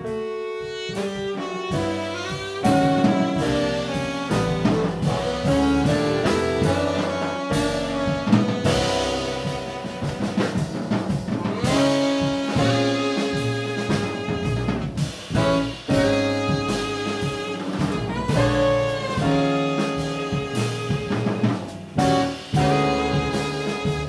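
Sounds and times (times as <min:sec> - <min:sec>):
baritone saxophone melody: 0:00.0 - 0:10.8, 0:11.4 - 0:24.0
drum kit with cymbals: 0:00.0 - 0:24.0
piano: 0:00.0 - 0:24.0
upright bass: 0:01.1 - 0:24.0.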